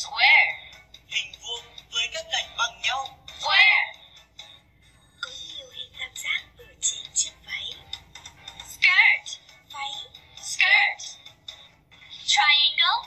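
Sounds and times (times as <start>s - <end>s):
music: 0.0s - 13.0s.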